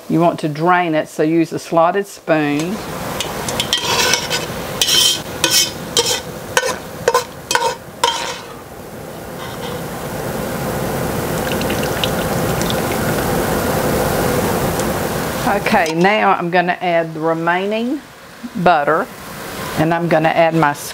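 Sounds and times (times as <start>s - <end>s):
fat sizzling in a pot: 2.7s - 8.5s, 11.1s - 14.2s
metal spoon scraping a pot: 3.5s - 8.5s.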